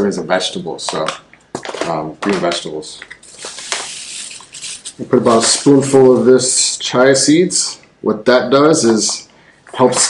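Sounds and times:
paper pouch crinkling: 0:03.2 - 0:06.1.

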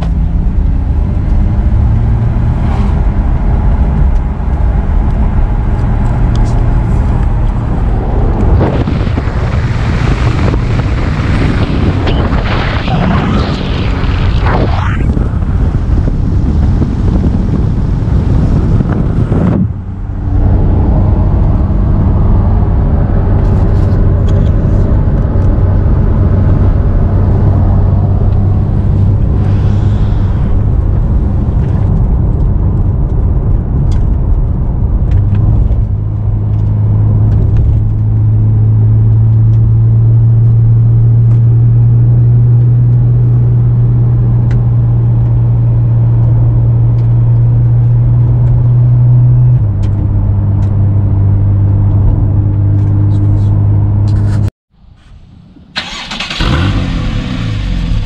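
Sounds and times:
wind rushing over microphone: 0:00.0 - 0:54.5.

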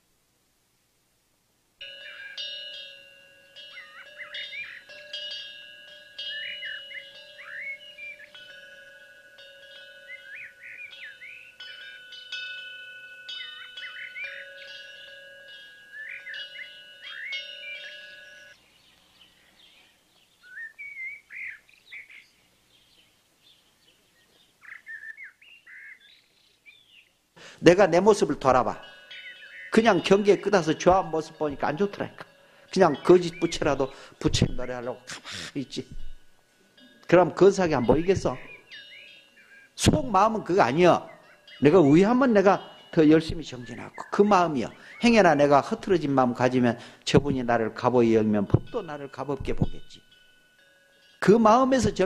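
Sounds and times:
chimes ringing: 0:01.8 - 0:19.8, 0:27.4 - 0:52.0
birds chirping: 0:01.8 - 0:52.0.

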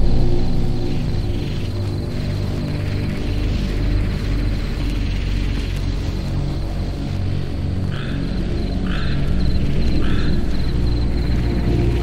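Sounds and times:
crickets chirping: 0:00.0 - 0:12.0
frogs croaking: 0:00.0 - 0:12.0
low bass drone: 0:00.0 - 0:12.0.

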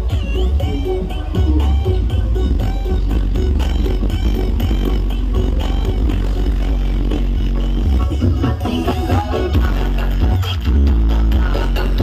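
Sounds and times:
loud bass-heavy dance music: 0:00.0 - 0:12.0.

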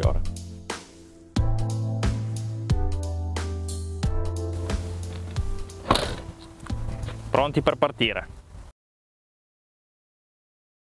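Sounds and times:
background music: 0:00.0 - 0:08.3
van tailgate thudding shut: 0:05.0 - 0:06.4.

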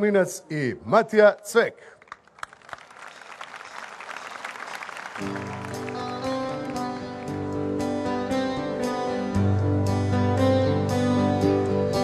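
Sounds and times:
audience applauding: 0:02.0 - 0:07.5
band playing held chords: 0:05.2 - 0:12.0.

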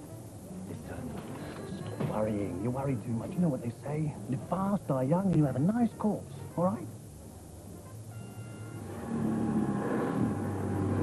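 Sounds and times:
vacuum cleaner running: 0:08.8 - 0:11.0.

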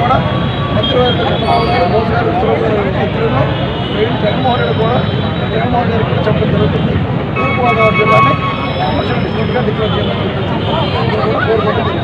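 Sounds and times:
man speaking into microphones: 0:00.0 - 0:12.0
street and crowd noise: 0:00.0 - 0:12.0.

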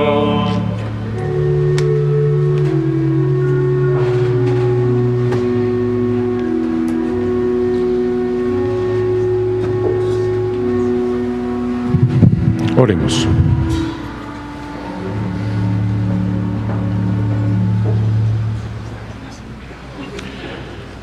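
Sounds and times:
church organ chords: 0:00.0 - 0:20.5
low thumps: 0:00.8 - 0:18.7.

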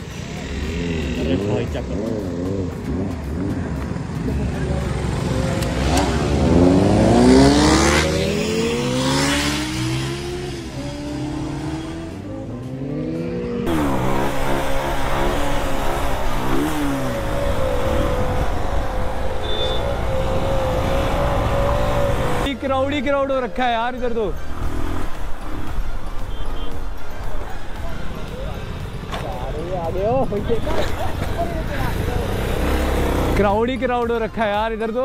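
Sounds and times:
motorcycle engines revving: 0:00.0 - 0:35.0
voices: 0:16.4 - 0:35.0.

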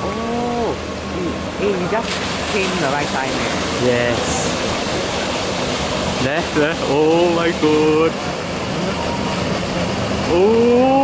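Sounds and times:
waterfall cascading over rocks: 0:02.2 - 0:11.0.

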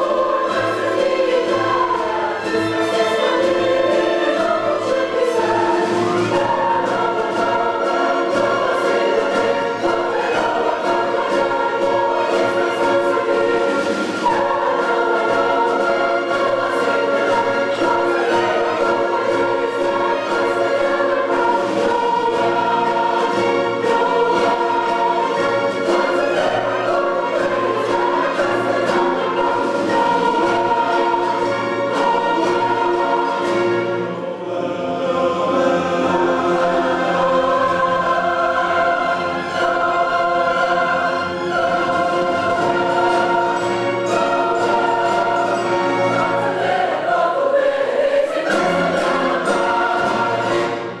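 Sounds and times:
choir singing with orchestra: 0:00.0 - 0:51.0.

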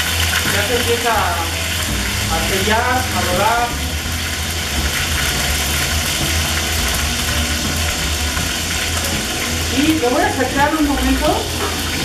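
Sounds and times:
constant low hum: 0:00.0 - 0:12.0
meat sizzling in a pan: 0:00.0 - 0:12.0.

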